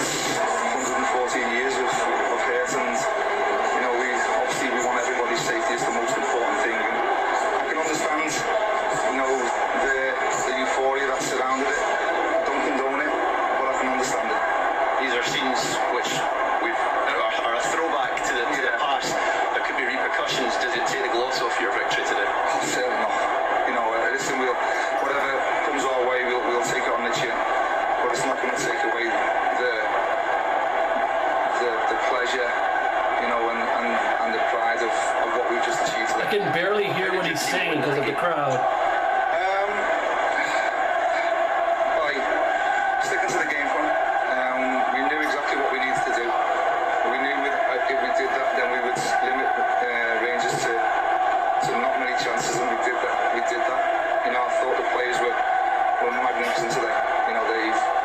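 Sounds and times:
man speaking: 35.6s - 38.6s, 56.1s - 57.8s.

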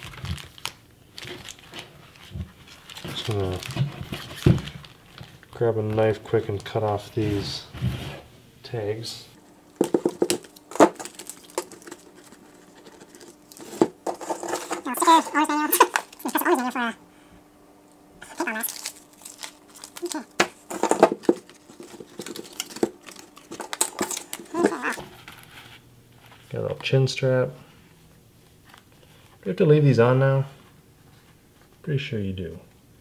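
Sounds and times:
paper crinkling and rustling: 0.0s - 8.0s, 9.8s - 16.7s, 18.2s - 27.0s.

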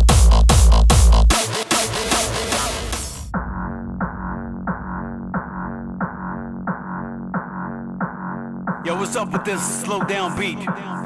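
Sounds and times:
pitched kick drum: 0.0s - 1.4s
muffled hardstyle dance music: 0.0s - 3.3s, 4.7s - 11.0s.

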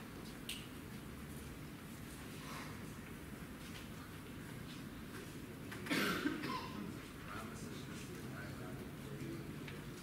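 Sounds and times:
low room noise: 0.0s - 10.0s
person coughing: 5.9s - 6.8s.

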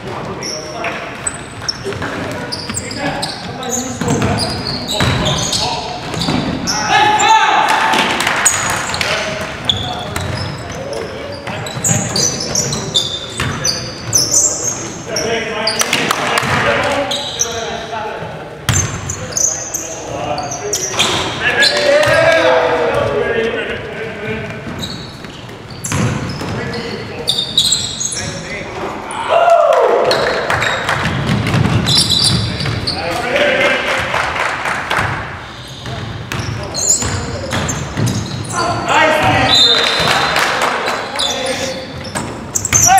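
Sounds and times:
sneaker squeaks: 0.0s - 7.5s, 8.3s - 23.7s, 24.3s - 28.7s, 30.0s - 33.3s, 35.4s - 42.9s
basketball bouncing on wooden floor: 4.0s - 5.4s, 9.4s - 10.8s, 13.4s - 14.2s, 25.8s - 26.6s, 30.5s - 32.9s, 35.8s - 38.4s
players shouting: 6.7s - 9.0s, 21.4s - 23.6s.

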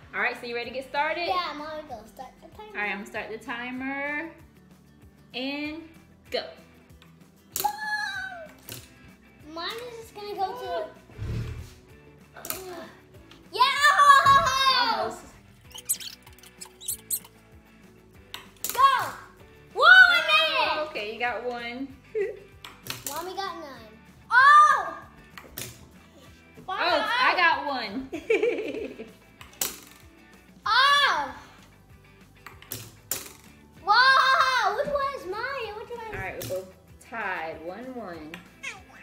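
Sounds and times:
quiet background music: 0.0s - 39.0s
child exclaiming: 7.6s - 8.6s, 13.6s - 15.2s, 18.7s - 20.7s, 23.1s - 25.1s, 30.6s - 31.5s, 33.8s - 35.7s, 38.6s - 39.0s.

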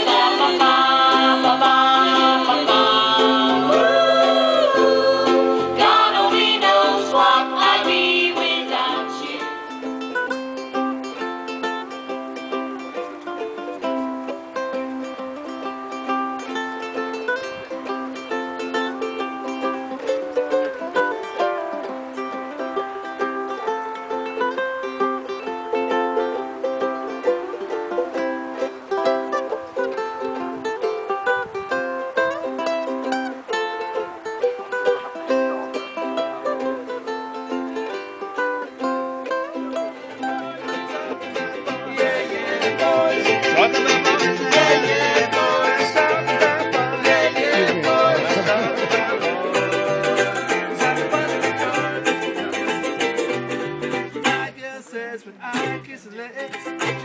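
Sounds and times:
ukuleles strumming: 0.0s - 57.0s
bass line: 40.3s - 54.5s.

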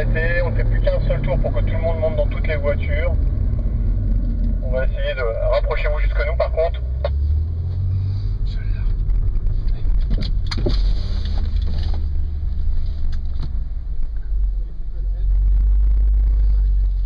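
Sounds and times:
car engine low rumble: 0.0s - 17.0s.

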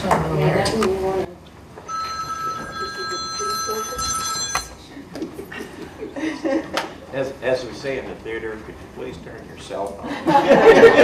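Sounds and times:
cell phone ringtone: 1.9s - 4.8s.

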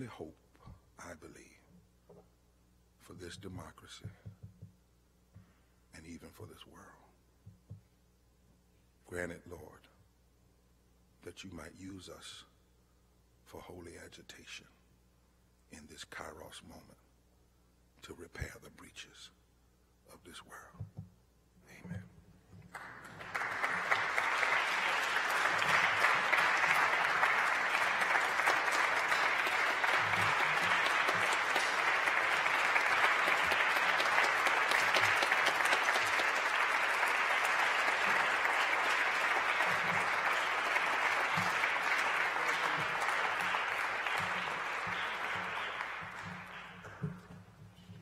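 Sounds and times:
audience applauding: 22.7s - 47.6s.

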